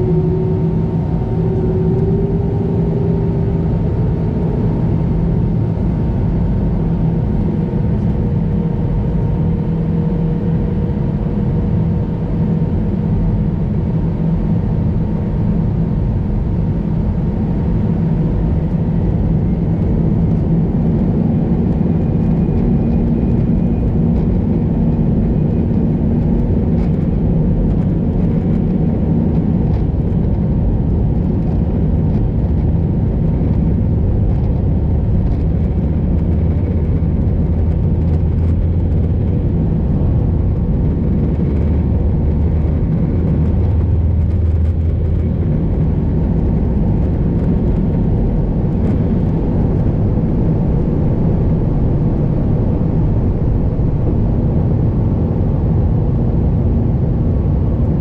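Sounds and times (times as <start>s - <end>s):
faint even whine: 0.0s - 9.5s
aircraft engines rumbling: 0.0s - 58.0s.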